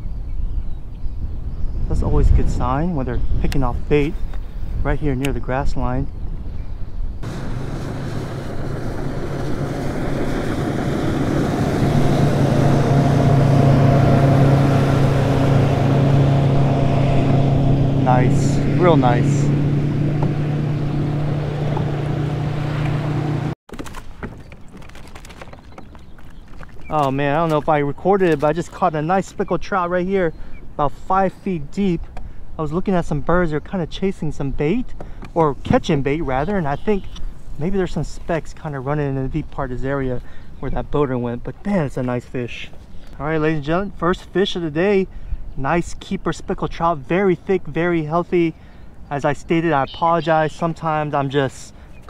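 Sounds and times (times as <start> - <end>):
wind buffeting microphone: 0.0 - 23.5
wind: 0.0 - 52.0
boat motor droning: 7.2 - 23.6, 49.0 - 52.0
water noise: 7.2 - 34.4, 35.4 - 52.0
person speaking: 18.0 - 19.6, 26.9 - 30.1, 49.1 - 51.8.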